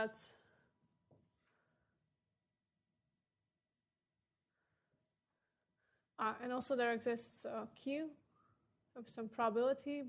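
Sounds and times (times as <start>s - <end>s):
marker writing on whiteboard: 0.0s - 2.8s, 4.2s - 5.6s, 7.8s - 9.4s.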